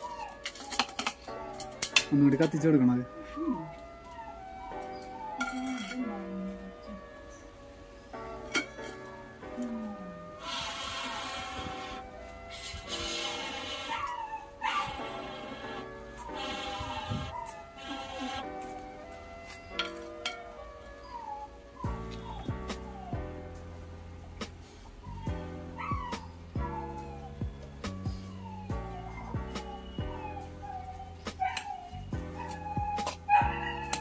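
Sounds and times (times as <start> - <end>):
background music of sustained notes: 0.0 - 34.0
gliding animal cries: 12.8 - 18.5.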